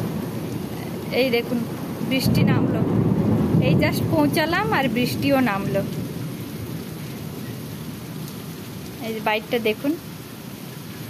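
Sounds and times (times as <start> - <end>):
heavy rain: 0.0 - 11.0.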